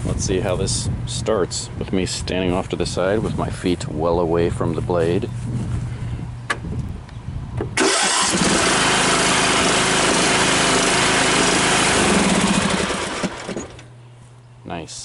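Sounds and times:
riding mower engine running: 7.6 - 14.5.

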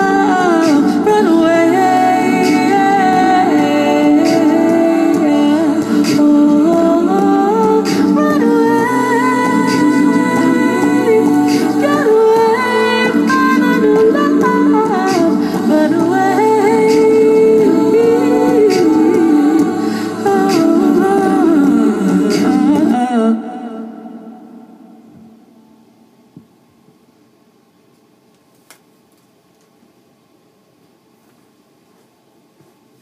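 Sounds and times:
layered a cappella vocal harmonies: 0.0 - 26.0.

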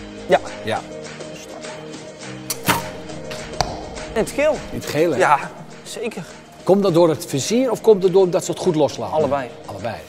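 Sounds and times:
background music: 0.0 - 10.0
bow shot snaps: 2.5 - 4.1.

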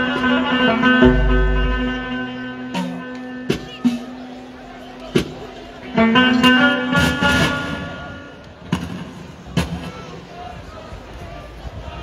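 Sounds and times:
amplified live music chord: 0.8 - 3.4.

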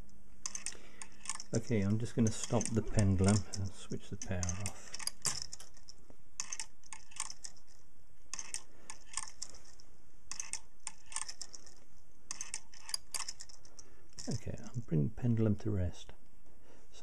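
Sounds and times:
clock mechanism clicking: 0.0 - 14.9.

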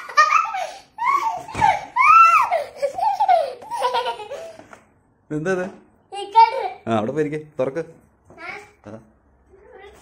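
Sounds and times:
young child laughing: 0.0 - 4.7.

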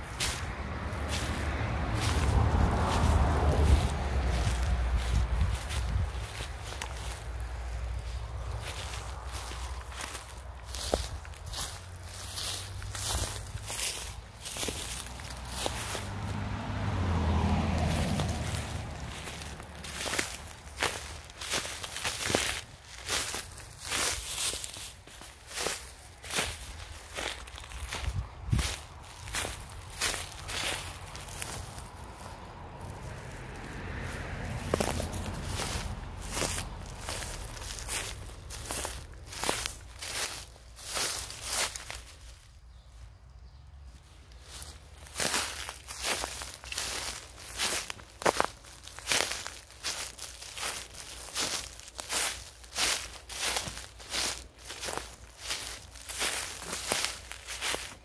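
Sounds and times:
footsteps on grass and dry leaves: 0.0 - 58.0.

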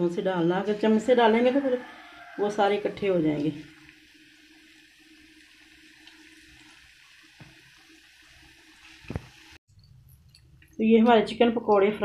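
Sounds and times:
deep-frying sizzling hiss: 0.1 - 9.6.

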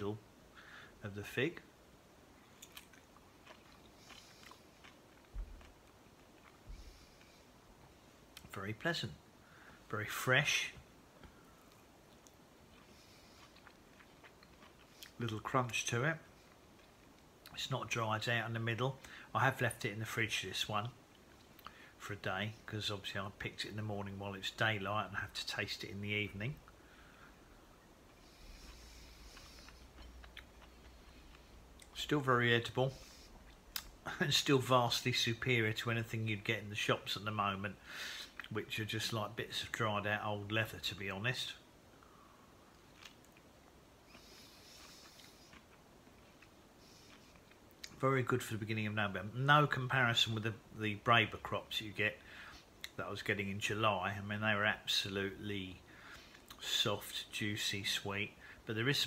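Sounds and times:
person chewing fruit: 2.4 - 8.5, 10.8 - 17.6, 26.6 - 34.2, 38.0 - 38.6, 42.0 - 48.0, 56.0 - 56.6
soft mouth clicks: 33.5 - 34.0.

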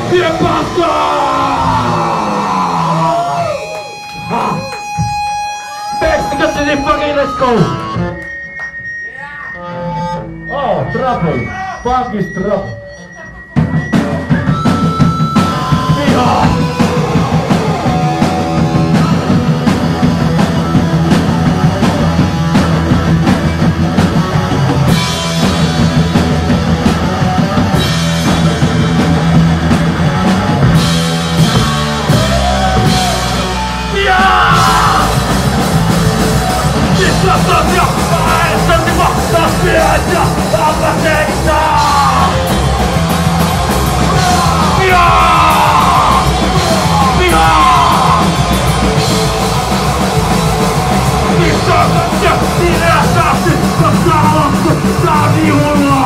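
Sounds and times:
guitar feedback tones: 0.0 - 56.0
live punk band playing loud: 0.0 - 56.0
short shouted voices: 32.2 - 35.3, 43.9 - 48.6.

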